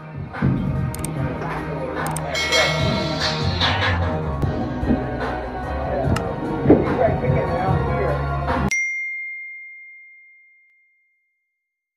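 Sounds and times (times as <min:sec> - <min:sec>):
high bell-like ding: 0:02.4 - 0:04.2, 0:08.7 - 0:11.2.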